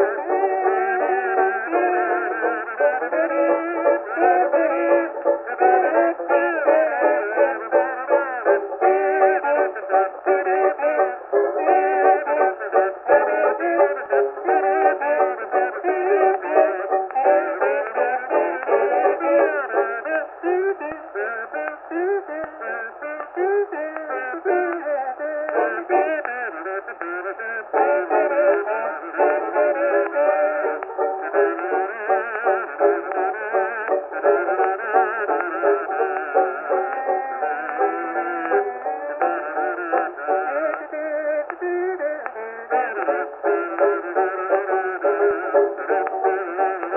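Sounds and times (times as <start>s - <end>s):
banjo: 0.0s - 46.9s
kazoos buzzing a tune: 0.0s - 46.9s.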